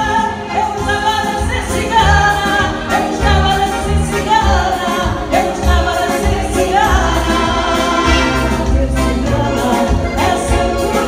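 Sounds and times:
accordion: 0:00.0 - 0:11.0
woman singing folk song: 0:00.0 - 0:11.0.

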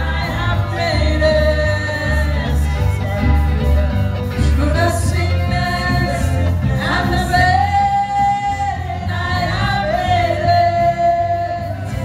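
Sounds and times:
woman singing into microphone: 0:00.0 - 0:03.5, 0:04.3 - 0:12.0
bass guitar: 0:00.0 - 0:12.0
electric guitar: 0:00.0 - 0:12.0.

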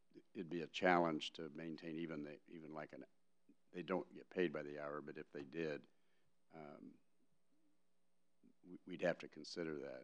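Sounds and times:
man speaking: 0:00.2 - 0:03.0, 0:03.8 - 0:05.8, 0:06.6 - 0:07.0, 0:08.7 - 0:10.0.

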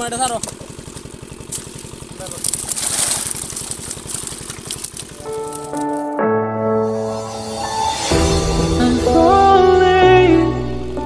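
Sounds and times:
small engine chugging: 0:00.0 - 0:05.9
intro music jingle: 0:05.2 - 0:11.0.

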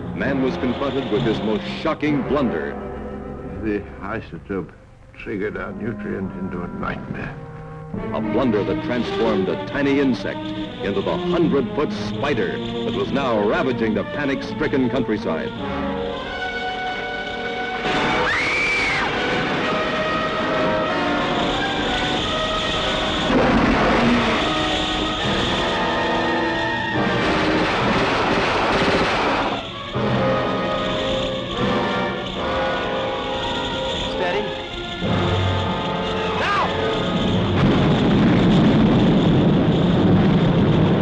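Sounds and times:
dramatic music: 0:00.0 - 0:41.0
rumbling effects: 0:00.0 - 0:41.0
loud crash: 0:17.8 - 0:41.0
woman screaming: 0:18.2 - 0:19.1.

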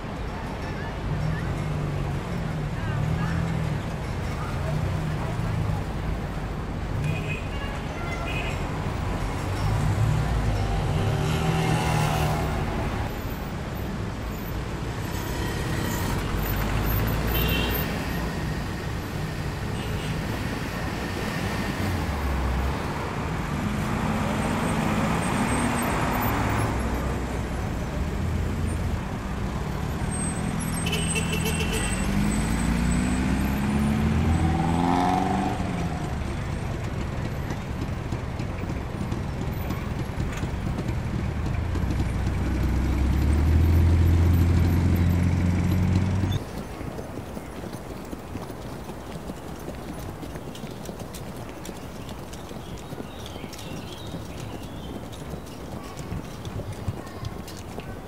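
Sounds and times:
quiet street background: 0:00.0 - 0:58.0
car engines in traffic: 0:08.6 - 0:58.0
car passing with engine rumble: 0:14.8 - 0:46.4.

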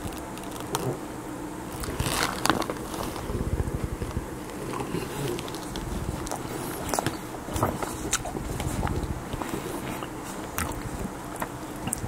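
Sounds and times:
close chewing with mouth smacks: 0:04.5 - 0:12.0.

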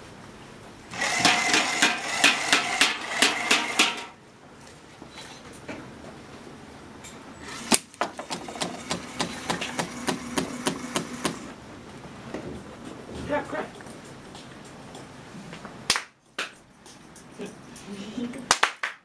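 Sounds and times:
motor mechanism clicking rhythmically: 0:00.9 - 0:04.1, 0:07.4 - 0:11.6
sharp snap: 0:15.9 - 0:16.6.

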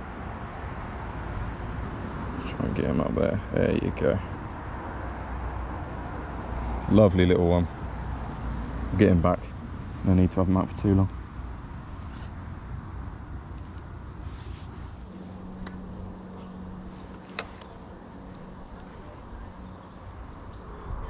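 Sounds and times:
low engine hum: 0:00.0 - 0:21.0
wind rumbling on microphone: 0:12.4 - 0:21.0
sharp clicks: 0:15.5 - 0:16.0.

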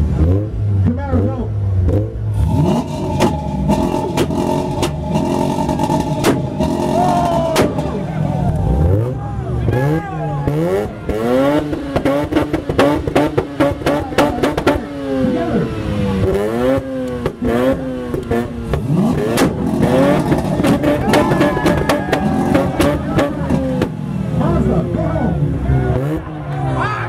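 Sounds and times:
rotary engine revving: 0:00.0 - 0:26.8
exhaust pops and bangs: 0:03.2 - 0:08.1, 0:11.1 - 0:14.9, 0:16.2 - 0:24.0.

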